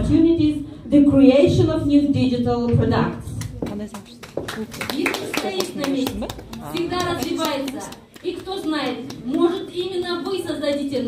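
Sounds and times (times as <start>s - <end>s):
person speaking in a hall: 0.0s - 11.0s
hand claps: 3.4s - 11.0s.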